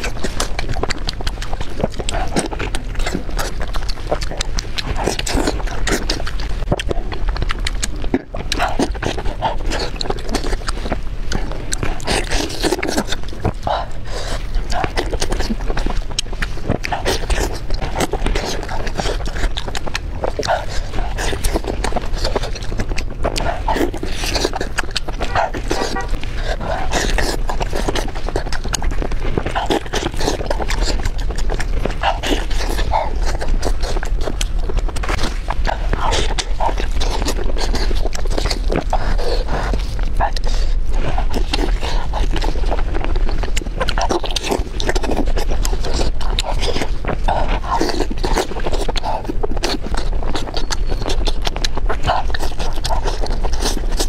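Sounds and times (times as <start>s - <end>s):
chewing close to microphone: 0.0s - 54.0s.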